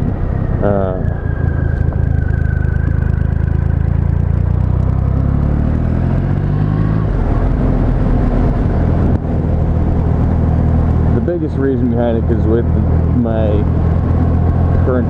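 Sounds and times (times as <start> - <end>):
motorcycle engine running: 0.0 - 15.0.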